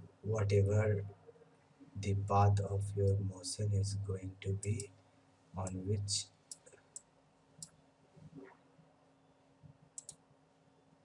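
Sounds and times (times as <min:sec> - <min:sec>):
faint computer mouse clicks: 0:10.0 - 0:10.2.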